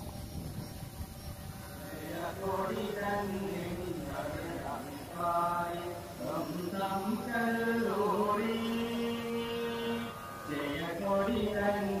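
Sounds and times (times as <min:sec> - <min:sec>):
slow singing with held notes: 0:01.5 - 0:12.0.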